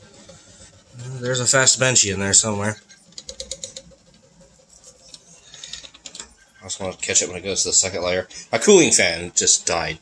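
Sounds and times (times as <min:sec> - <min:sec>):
printer motors whining: 0:00.0 - 0:10.0.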